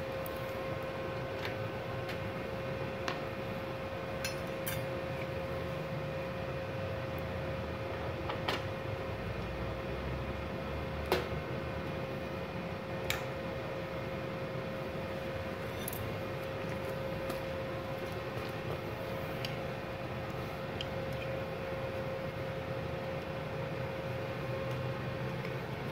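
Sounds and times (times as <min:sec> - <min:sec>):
cooling fan humming: 0:00.0 - 0:25.9.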